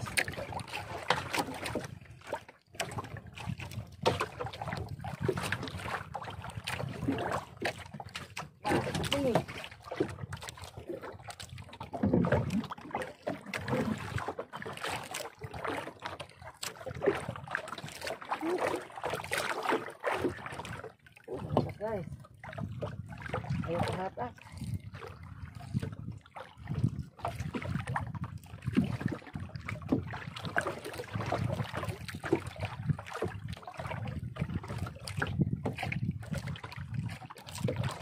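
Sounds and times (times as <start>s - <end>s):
water slapping boat hull: 0.0s - 38.0s.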